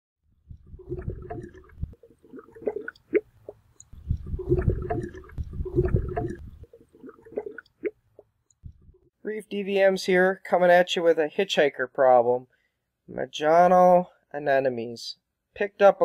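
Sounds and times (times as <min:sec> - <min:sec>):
gurgling bubbling: 0:00.5 - 0:08.0.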